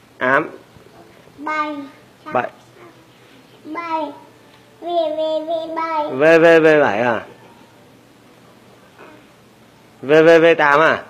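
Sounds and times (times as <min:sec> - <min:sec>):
toddler chanting: 0:03.7 - 0:06.2.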